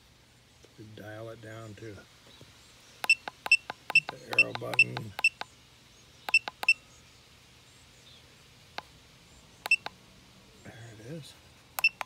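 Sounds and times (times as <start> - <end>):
short high electronic beeps: 11.8 - 12.0.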